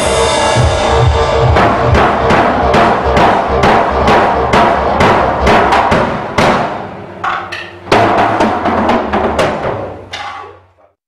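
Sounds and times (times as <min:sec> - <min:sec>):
loud drum hit: 0:00.0 - 0:10.4
drum kit steady beat: 0:00.0 - 0:10.6.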